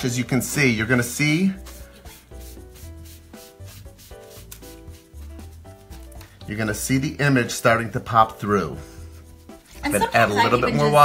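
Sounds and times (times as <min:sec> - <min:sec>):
sponge scrubbing paper: 0:01.0 - 0:06.1, 0:08.9 - 0:10.4.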